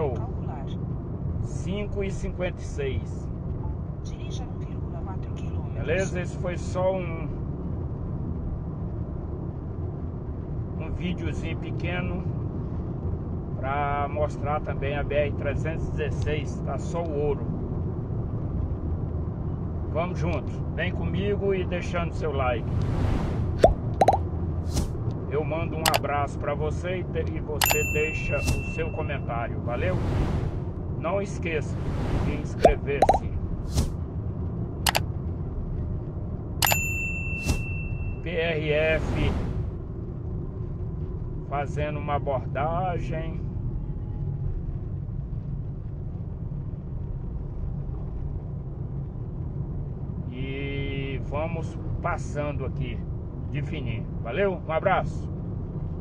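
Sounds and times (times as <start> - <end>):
car engine and tyre rumble: 0.0 - 56.0
mouse click: 23.6 - 24.2, 32.6 - 33.2
bright bell ding: 27.6 - 29.1, 36.6 - 38.2.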